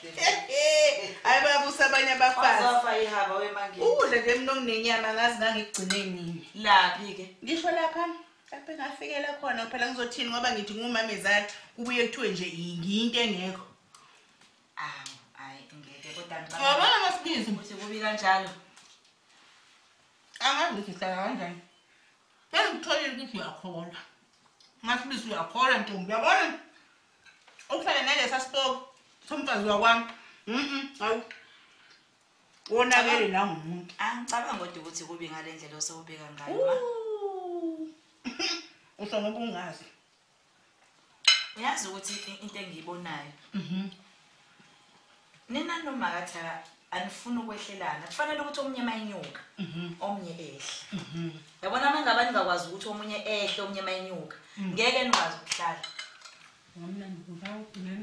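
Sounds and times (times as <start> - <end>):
woman talking: 0.0 - 13.7, 14.8 - 18.6, 20.4 - 21.7, 32.7 - 38.0.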